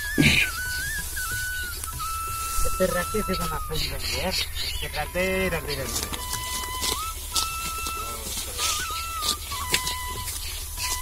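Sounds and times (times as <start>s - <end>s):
sickles cutting dry stalks: 0.0s - 11.0s
whistle-like melody: 0.0s - 11.0s.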